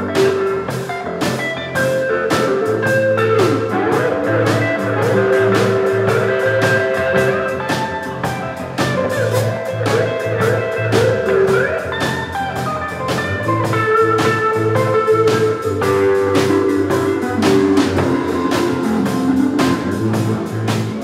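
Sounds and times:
bass notes: 0:00.0 - 0:21.0
drum kit steady beat: 0:00.0 - 0:21.0
guitar: 0:00.0 - 0:21.0.

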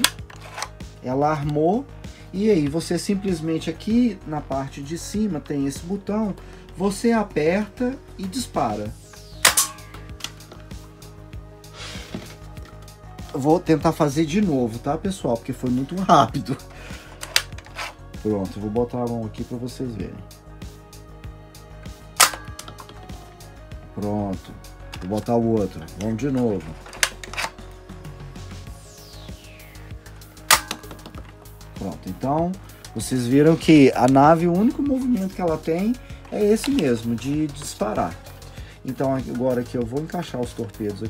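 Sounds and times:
background music: 0:00.0 - 0:41.0
toy launcher plastic snap: 0:09.4 - 0:10.4, 0:22.2 - 0:23.0, 0:30.5 - 0:31.2.

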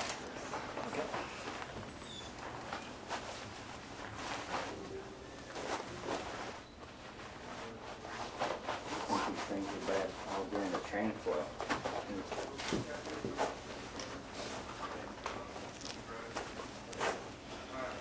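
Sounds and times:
suits rustling and clicking: 0:00.0 - 0:17.4.

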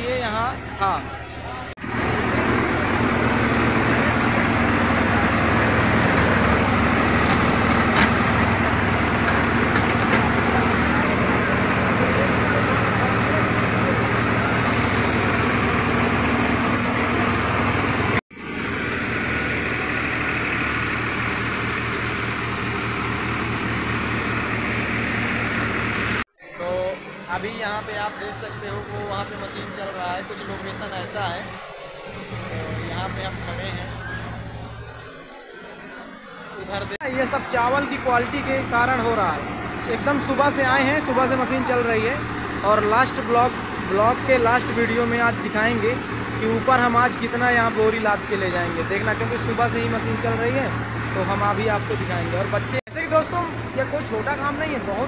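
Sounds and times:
hulling machine running: 0:00.0 - 0:55.0
tractor engine drone: 0:00.0 - 0:55.0.

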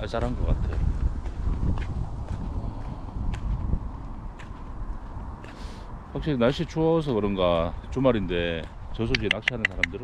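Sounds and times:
footsteps on a path: 0:00.0 - 0:10.0
wind rumble on microphone: 0:00.0 - 0:10.0.

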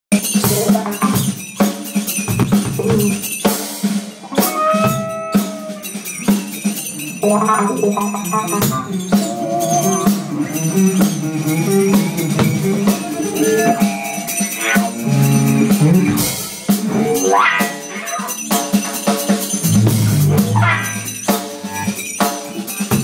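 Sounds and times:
drum kit: 0:00.1 - 0:23.0
drum kit hits: 0:02.2 - 0:05.9
electric guitar: 0:02.3 - 0:23.0.

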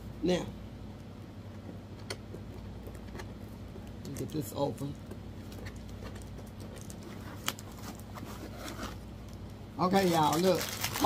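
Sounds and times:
steady low hum: 0:00.0 - 0:11.0
hands handling cardboard box: 0:05.5 - 0:09.1.

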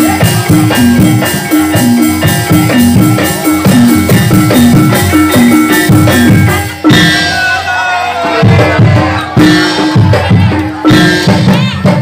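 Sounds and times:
hand drumming: 0:00.0 - 0:07.4
gamelan bronze strikes: 0:00.0 - 0:12.0.

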